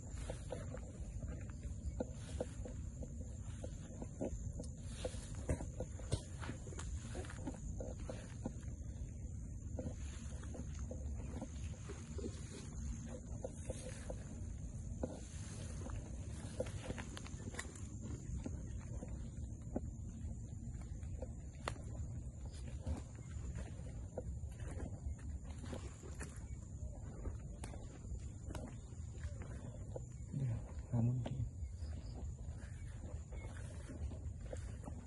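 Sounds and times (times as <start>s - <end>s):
footsteps through dry grass: 0.0s - 35.0s
grass stems crackling: 10.0s - 19.3s
wind on microphone: 20.9s - 35.0s.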